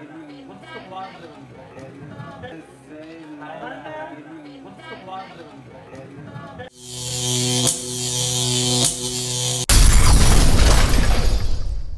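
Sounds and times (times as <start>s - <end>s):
electric buzz: 6.7s - 11.6s.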